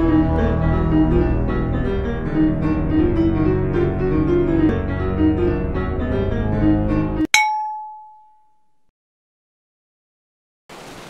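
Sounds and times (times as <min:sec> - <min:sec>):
instrumental music: 0:00.0 - 0:07.8.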